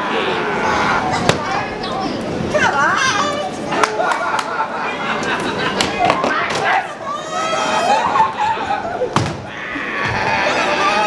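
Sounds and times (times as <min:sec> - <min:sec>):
children's voices: 0:00.0 - 0:04.1, 0:06.0 - 0:09.0
street noise: 0:00.0 - 0:11.0.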